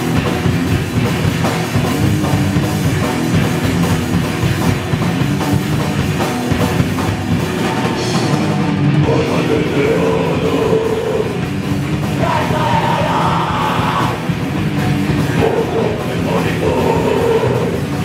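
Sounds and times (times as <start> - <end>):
distorted electric guitar: 0.0 - 18.0
pounding drum kit: 0.0 - 18.0
shouted vocals: 12.1 - 14.3, 15.4 - 17.8.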